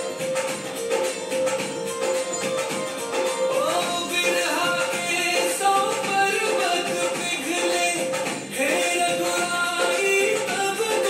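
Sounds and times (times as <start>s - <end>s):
instrumental backing: 0.0s - 11.0s
person singing devotional song: 3.6s - 11.0s.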